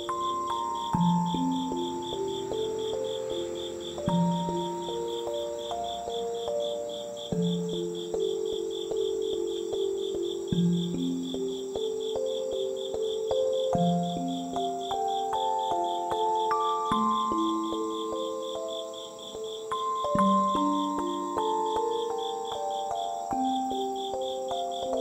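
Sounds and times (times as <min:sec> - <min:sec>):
crickets chirping: 0:00.0 - 0:25.0
gentle music of struck notes: 0:00.0 - 0:25.0
high insect trill: 0:00.0 - 0:25.0.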